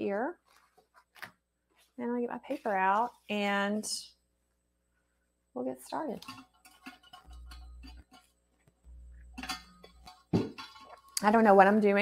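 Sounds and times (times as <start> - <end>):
paper rustling: 0.4 - 3.3
paper and art supplies handled: 0.4 - 3.5.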